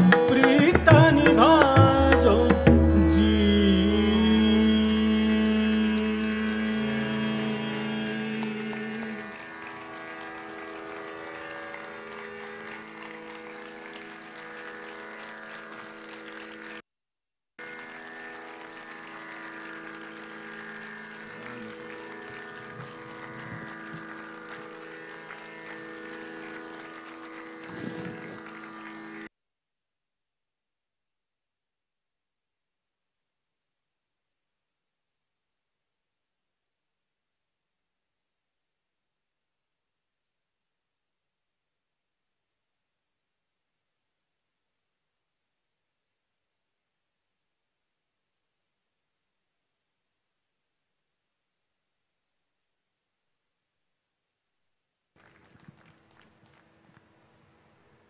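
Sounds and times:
tanpura drone: 0:02.0 - 0:16.8, 0:17.6 - 0:29.3.

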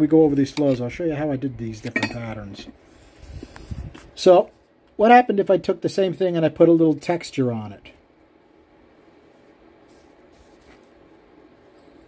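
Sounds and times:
faint low hum and hiss: 0:00.0 - 0:12.0.

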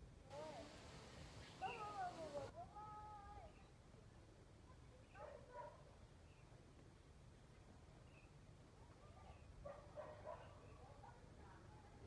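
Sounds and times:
faint hiss: 0:00.0 - 0:05.0.

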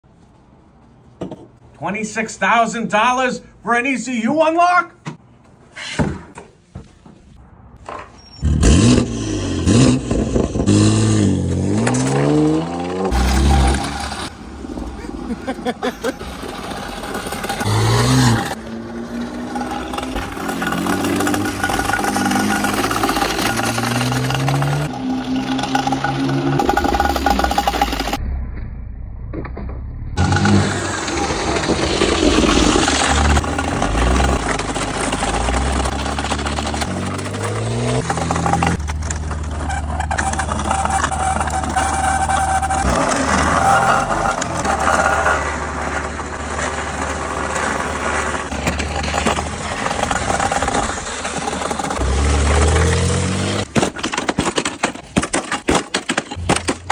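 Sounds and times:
car engine revving and accelerating: 0:08.4 - 0:14.4, 0:16.7 - 0:28.2, 0:30.2 - 0:38.8, 0:52.0 - 0:53.7.

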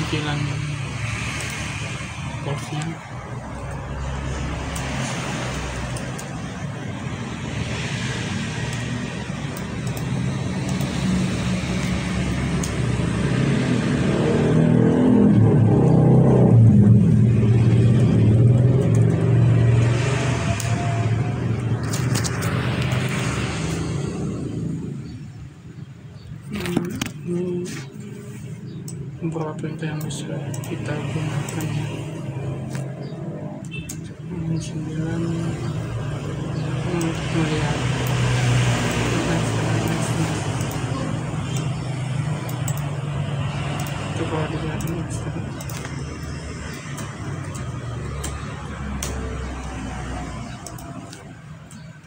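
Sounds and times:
road traffic passing: 0:00.0 - 0:52.0.

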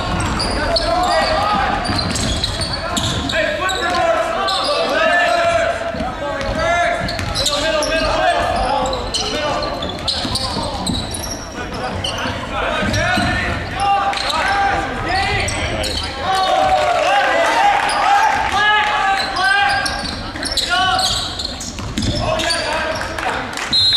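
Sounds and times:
people shouting and talking: 0:00.0 - 0:23.9
basketball bouncing on hardwood: 0:00.1 - 0:03.3, 0:05.5 - 0:09.1, 0:12.8 - 0:13.8, 0:21.7 - 0:22.2.

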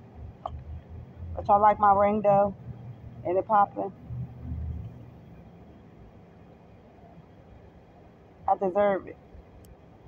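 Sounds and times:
faint outdoor background noise: 0:00.0 - 0:10.0
low rumble: 0:03.9 - 0:05.7.

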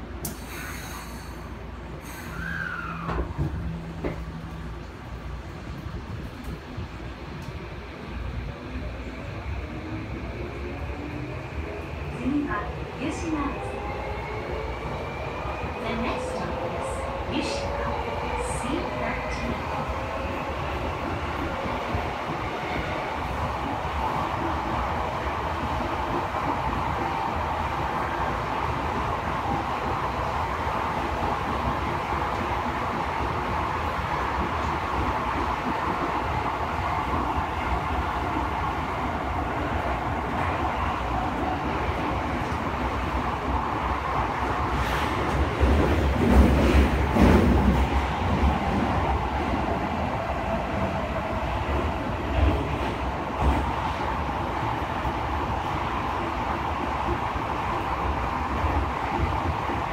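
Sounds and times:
subway train running: 0:00.0 - 0:59.9
train clatter: 0:44.7 - 0:49.1.

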